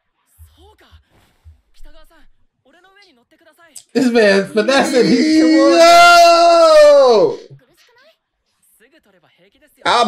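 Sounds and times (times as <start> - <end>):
high strained voice: 3.8 - 7.6.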